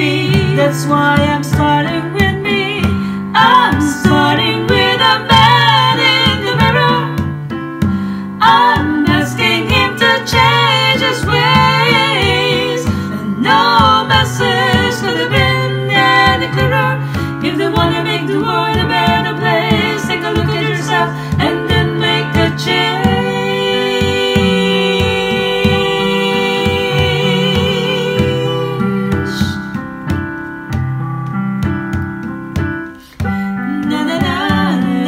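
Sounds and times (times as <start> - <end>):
layered vocal harmonies singing: 0.0 - 29.9, 33.0 - 35.0
hand drum beat: 0.0 - 35.0
piano: 0.0 - 35.0.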